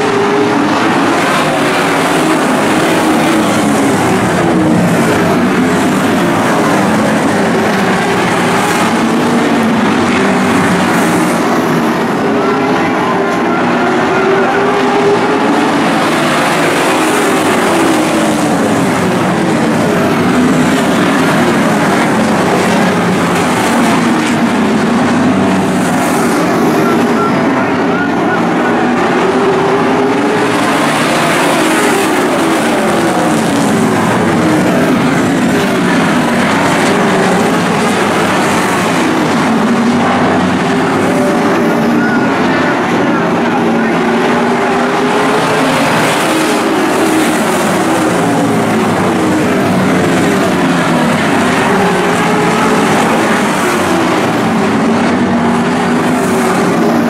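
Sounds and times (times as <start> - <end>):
race car engines at speed: 0.0 - 57.0.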